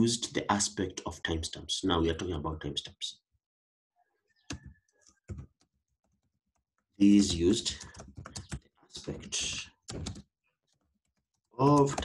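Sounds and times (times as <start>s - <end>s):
typing on computer keyboard: 4.5s - 12.0s.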